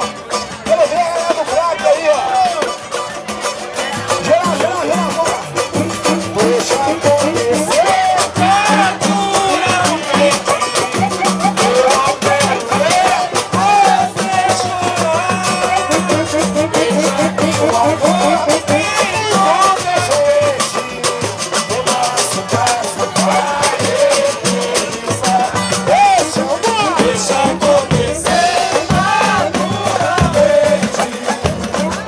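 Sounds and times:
low hand-drum beats: 0.0s - 32.0s
pandeiros: 0.0s - 32.0s
voices singing: 0.0s - 32.0s.

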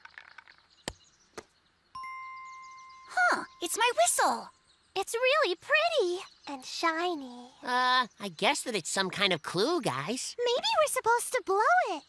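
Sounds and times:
bright sparkle chime: 2.0s - 4.7s.

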